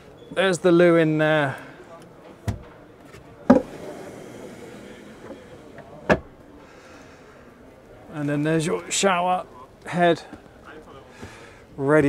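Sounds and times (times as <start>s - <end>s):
drawer being handled and shut: 2.4s - 4.2s, 5.0s - 6.3s.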